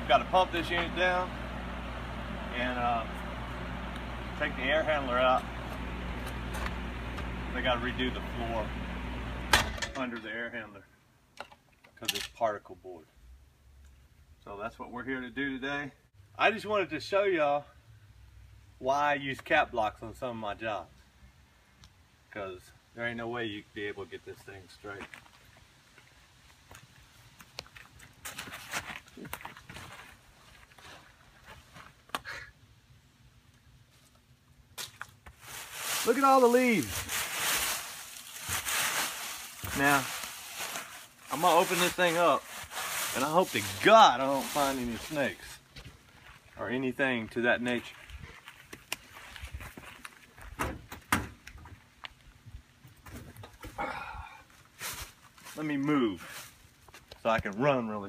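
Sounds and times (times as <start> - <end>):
footsteps crunching dry leaves: 34.8 - 50.4, 54.6 - 57.1.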